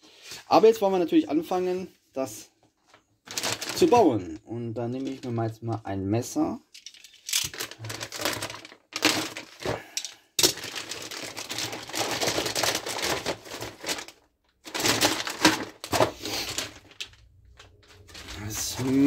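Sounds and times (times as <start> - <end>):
plastic bag crinkling: 2.8 - 5.4, 6.7 - 19.0.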